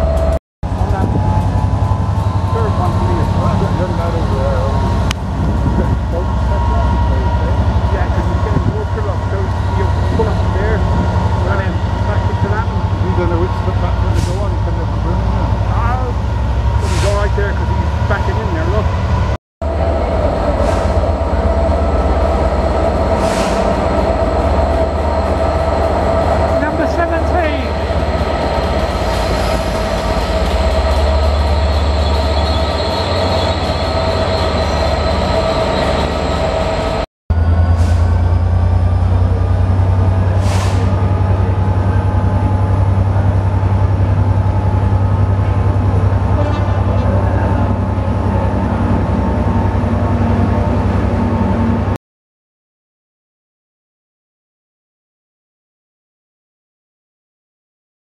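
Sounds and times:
diesel locomotive engines droning: 0:00.0 - 0:52.0
train passing: 0:00.0 - 0:52.0.

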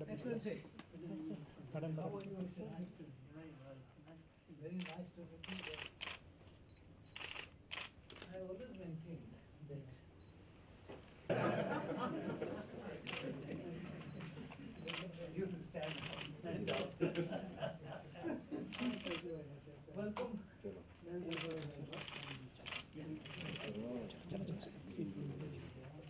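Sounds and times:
low indistinct conversation: 0:00.0 - 0:26.0
camera shutters firing in bursts: 0:04.8 - 0:06.3, 0:07.2 - 0:08.4, 0:13.0 - 0:13.4, 0:14.8 - 0:15.2, 0:15.8 - 0:16.9, 0:18.7 - 0:19.3, 0:21.3 - 0:23.8.

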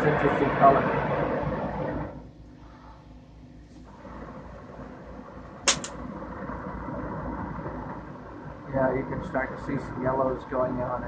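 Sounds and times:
sharp double click: 0:05.7 - 0:05.9.

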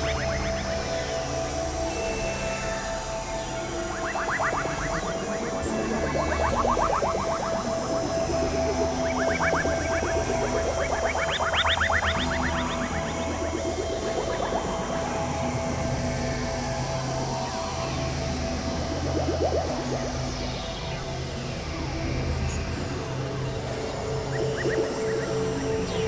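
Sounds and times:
low drones: 0:00.0 - 0:26.0.

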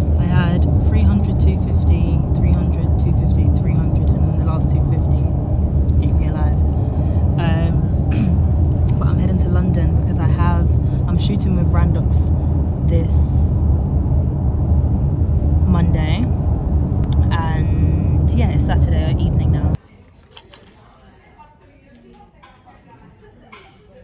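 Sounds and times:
car interior road rumble: 0:00.0 - 0:19.8.

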